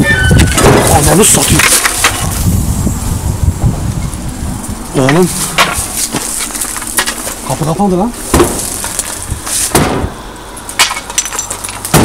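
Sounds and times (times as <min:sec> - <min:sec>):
wind buffeting microphone: 0:00.0 - 0:10.6.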